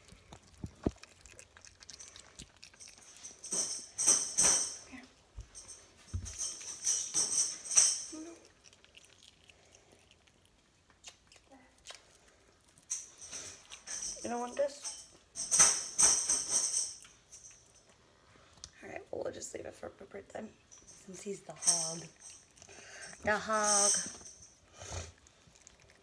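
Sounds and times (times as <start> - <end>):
metallic jingling: 1.8 - 8.4, 12.8 - 17.9, 20.7 - 24.6.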